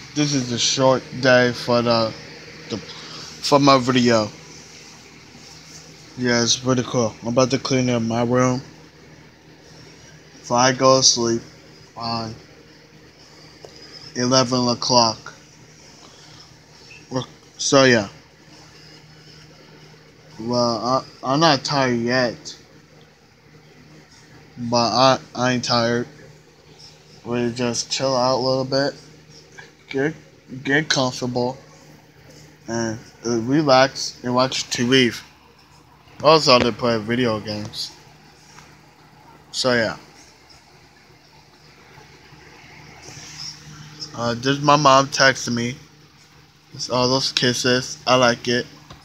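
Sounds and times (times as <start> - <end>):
person speaking: 0.0 - 8.8, 9.7 - 12.5, 13.2 - 22.7, 24.0 - 38.8, 42.0 - 45.9
background hum and hiss: 0.0 - 49.0.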